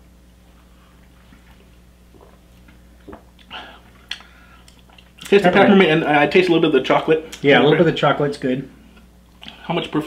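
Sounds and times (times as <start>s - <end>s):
steady low hum: 0.0s - 10.0s
person sipping a drink: 2.1s - 5.1s.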